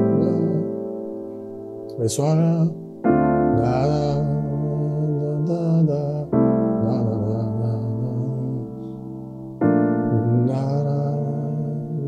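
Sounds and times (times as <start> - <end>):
keyboard piano chord sustaining: 0.0 - 12.0.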